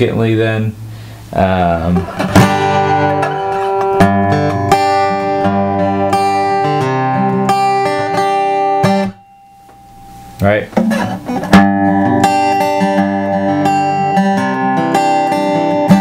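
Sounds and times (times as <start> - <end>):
acoustic guitar chords strummed: 1.0 - 16.0.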